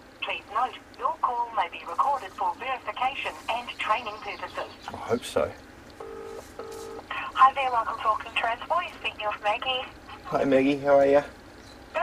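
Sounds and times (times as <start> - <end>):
voice on phone line: 0.2 - 5.1, 6.8 - 10.7
telephone ringing tone: 6.0 - 7.8.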